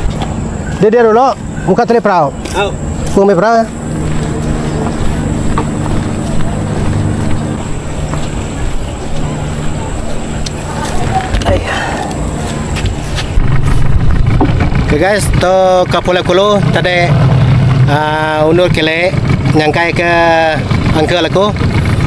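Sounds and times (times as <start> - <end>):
engine idling: 0.0 - 22.0
louder engine: 0.0 - 22.0.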